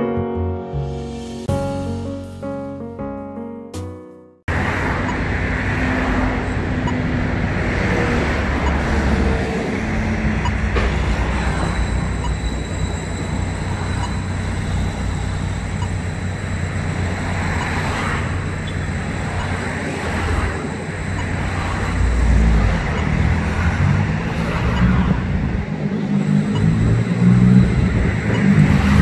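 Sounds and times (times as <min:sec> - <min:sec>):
piano music: 0:00.0 - 0:07.1
vehicle engines: 0:04.5 - 0:29.0.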